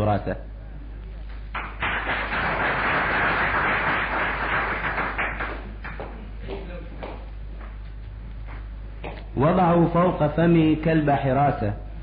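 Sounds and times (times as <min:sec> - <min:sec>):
audience applauding: 0:01.5 - 0:06.2.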